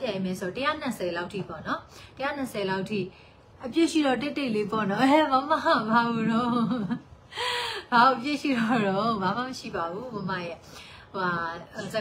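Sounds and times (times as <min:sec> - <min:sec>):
woman talking: 0:00.0 - 0:07.0, 0:07.6 - 0:12.0.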